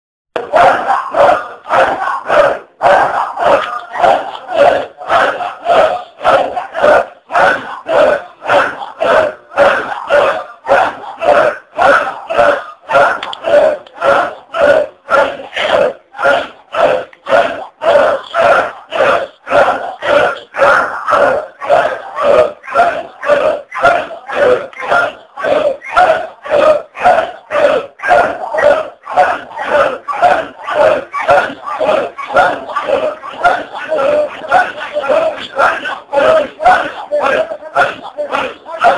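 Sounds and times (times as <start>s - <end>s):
crowd of men chanting: 0.4s - 38.9s.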